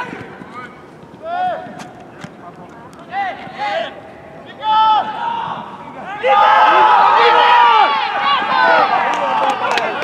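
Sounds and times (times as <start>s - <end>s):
players shouting: 3.1s - 10.0s.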